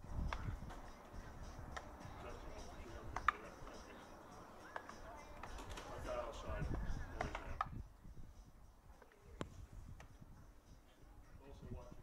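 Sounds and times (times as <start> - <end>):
faint distant voices: 0.5 - 7.9.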